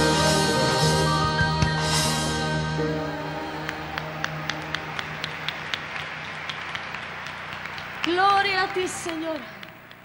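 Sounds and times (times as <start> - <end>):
live band playing a held chord: 0.0 - 7.1
audience applause: 3.6 - 10.0.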